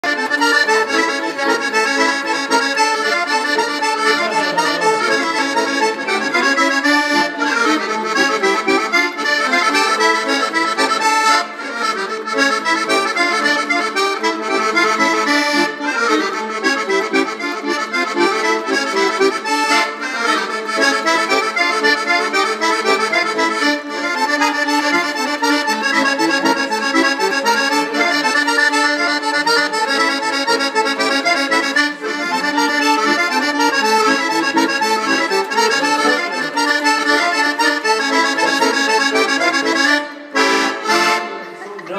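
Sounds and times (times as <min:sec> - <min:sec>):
button accordion folk tune: 0:00.0 - 0:41.9.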